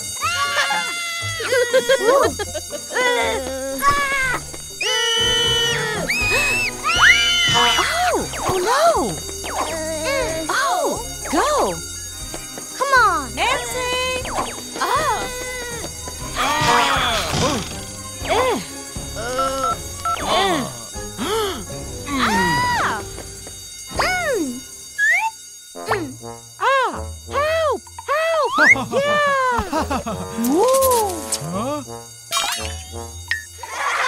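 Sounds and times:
cartoon background music: 0.0s - 34.0s
characters crying and wailing: 0.2s - 11.0s, 14.8s - 17.7s, 19.2s - 23.0s, 26.6s - 31.8s.

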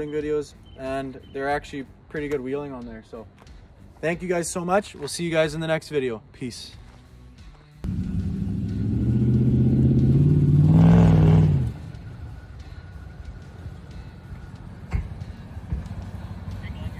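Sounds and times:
pickup engine revving: 7.9s - 12.2s.

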